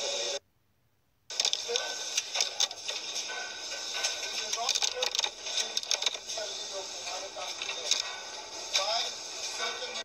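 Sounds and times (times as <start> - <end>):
music: 1.7 - 10.0
small clicks and clatter: 4.0 - 6.2.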